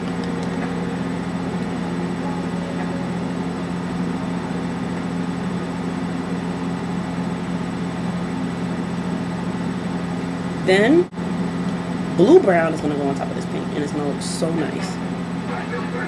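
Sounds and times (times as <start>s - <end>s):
low hum: 0.0s - 16.0s.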